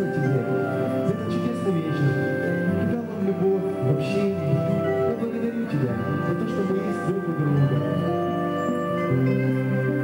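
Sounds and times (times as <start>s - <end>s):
guitar: 2.3s - 10.0s.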